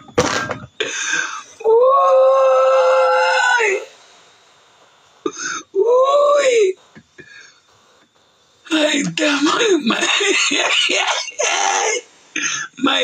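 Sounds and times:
man wailing: 0:01.6 - 0:03.9, 0:05.8 - 0:06.7, 0:09.0 - 0:12.0.

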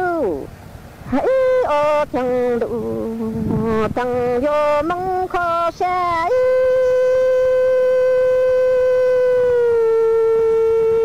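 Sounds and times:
person singing a long note: 0:00.0 - 0:00.5, 0:01.1 - 0:11.0.

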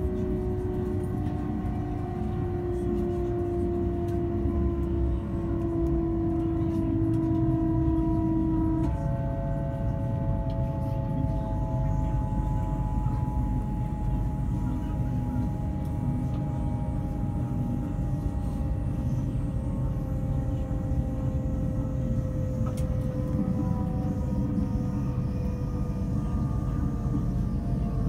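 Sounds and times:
train carriage rumbling on track: 0:00.0 - 0:28.0.

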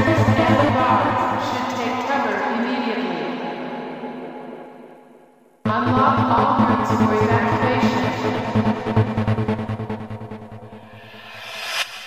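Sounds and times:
electronic trance music: 0:00.0 - 0:01.6, 0:05.6 - 0:12.0.

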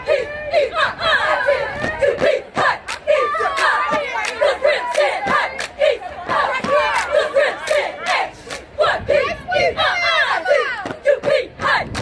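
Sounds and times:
cheerleaders chanting and yelling: 0:00.0 - 0:12.0.

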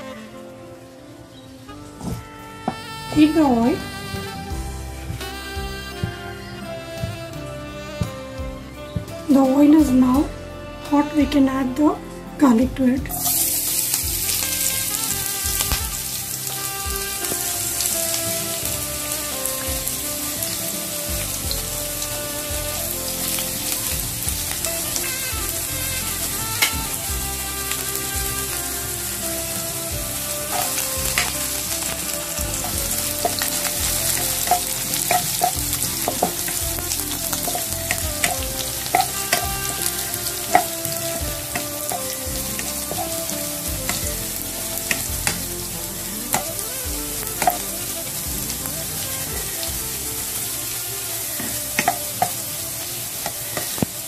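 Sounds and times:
garlic sizzling in oil: 0:10.9 - 0:54.0.

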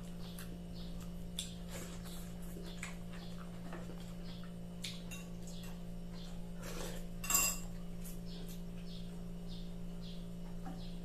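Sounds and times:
person chewing with wet smacks: 0:00.0 - 0:07.1
steady low hum: 0:00.0 - 0:11.0.

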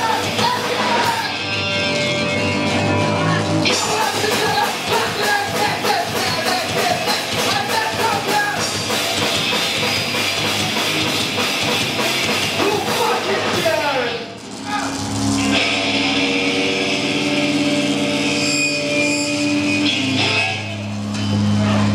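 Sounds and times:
drums beating: 0:00.0 - 0:18.2
distorted electric guitars: 0:00.0 - 0:21.9
person singing: 0:03.3 - 0:08.7.

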